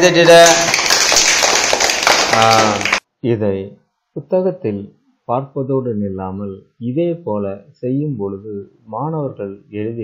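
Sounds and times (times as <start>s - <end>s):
hand clapping: 0.0s - 3.0s.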